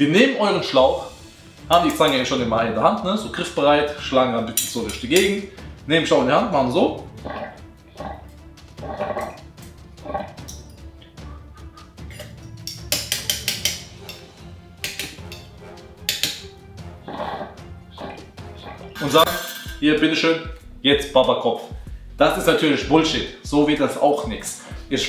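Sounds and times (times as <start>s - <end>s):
background music: 0.0s - 25.0s
metal tongs clicking: 4.6s - 5.4s, 12.1s - 16.4s.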